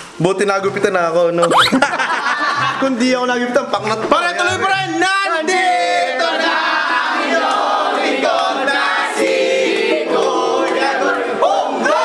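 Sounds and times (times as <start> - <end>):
group singing loudly: 5.6 - 12.0.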